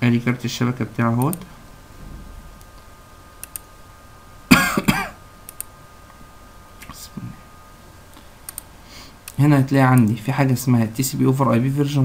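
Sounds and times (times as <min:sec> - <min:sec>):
computer mouse clicks: 0:03.4 - 0:03.7, 0:05.5 - 0:05.7, 0:08.4 - 0:09.4
man clearing his throat: 0:04.5 - 0:05.2.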